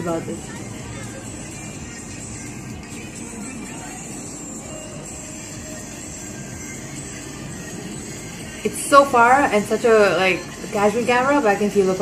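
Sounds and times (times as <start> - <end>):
pop dance music: 0.0 - 12.0
street noise: 0.0 - 12.0.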